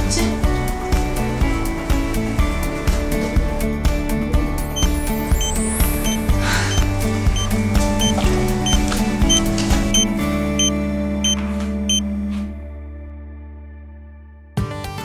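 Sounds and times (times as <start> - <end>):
music with steady beat: 4.7 - 12.4
high electronic beeps: 7.4 - 12.0.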